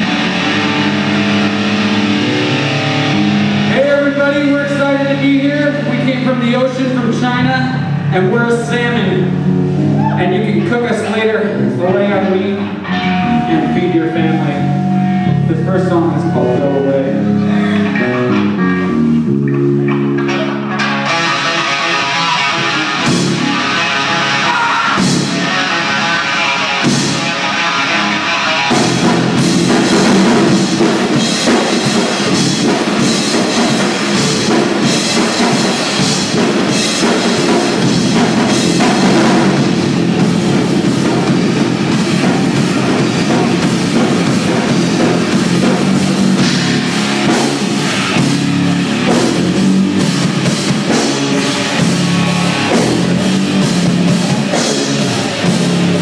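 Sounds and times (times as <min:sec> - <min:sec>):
rock band playing loudly: 0:00.0 - 0:56.0.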